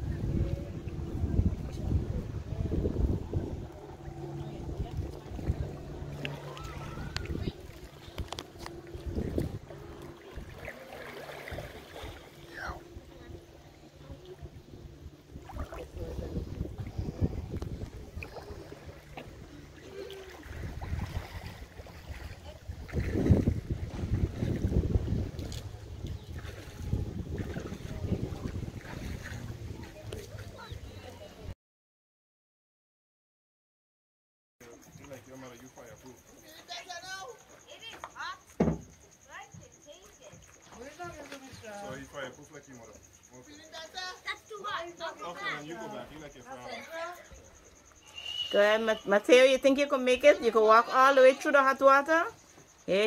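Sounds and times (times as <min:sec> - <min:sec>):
wind buffeting microphone: 0:00.0 - 0:10.7, 0:11.3 - 0:31.5
steady low hum: 0:00.0 - 0:31.4.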